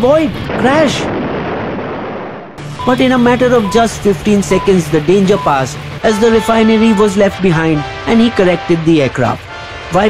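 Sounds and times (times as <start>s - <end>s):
explosion blast: 0.3s - 2.8s.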